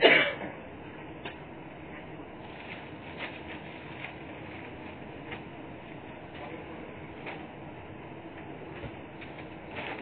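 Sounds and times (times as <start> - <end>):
steady recording hiss: 0.0 - 10.0
papers rustling: 2.4 - 5.5, 8.8 - 10.0.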